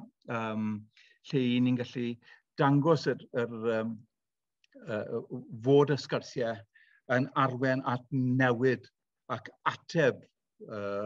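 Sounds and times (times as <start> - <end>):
man speaking: 0.0 - 4.0, 4.8 - 11.0.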